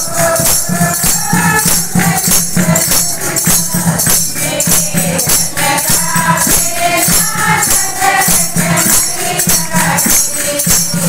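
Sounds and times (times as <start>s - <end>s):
group singing in chorus: 0.0s - 11.0s
hand-clapping: 0.0s - 11.0s
jingling percussion: 0.0s - 11.0s.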